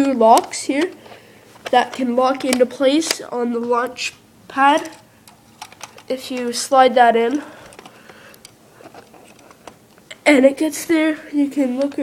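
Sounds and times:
plastic pieces clicking: 0:00.0 - 0:10.2.

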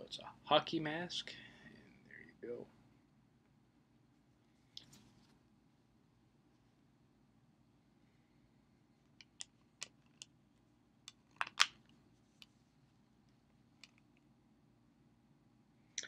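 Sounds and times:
plastic case clicks and snaps: 0:11.1 - 0:11.8.

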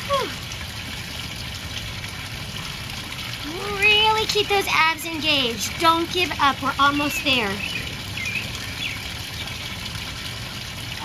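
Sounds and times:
bird chirps: 0:07.0 - 0:09.6.

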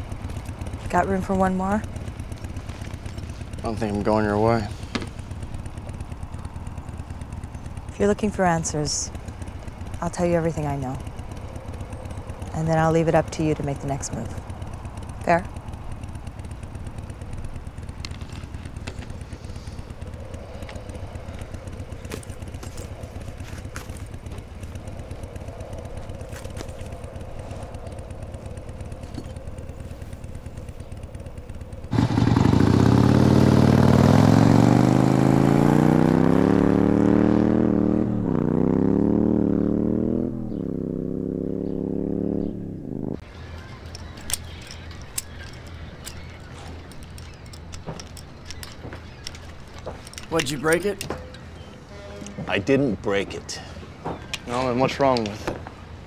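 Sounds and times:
low steady rumble: 0:00.0 - 0:56.0
motorcycle accelerating: 0:00.0 - 0:56.0.

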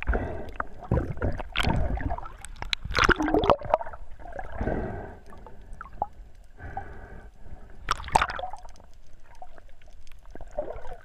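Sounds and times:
water gurgling underwater: 0:00.0 - 0:06.8, 0:07.8 - 0:11.0.

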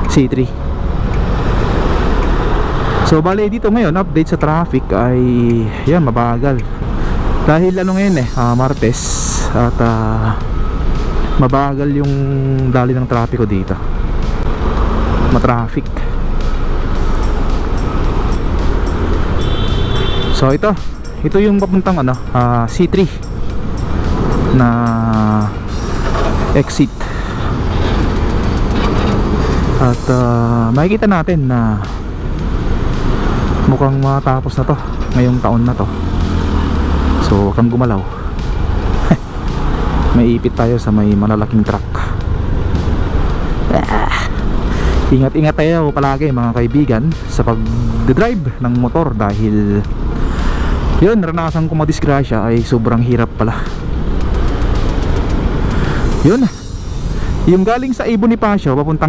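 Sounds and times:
truck engines and tyres rumbling: 0:00.0 - 0:59.0
rushing traffic hiss: 0:05.1 - 0:59.0.

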